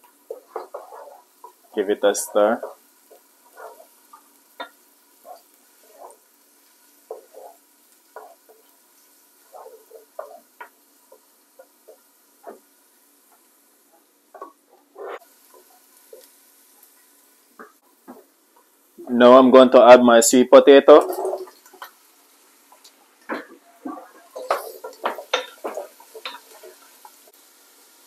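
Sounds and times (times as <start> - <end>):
spoon tapping and scraping a pan: 0.0 - 1.7, 2.6 - 18.7, 21.0 - 22.0, 22.7 - 27.4
onions sizzling in a pot: 0.0 - 28.0.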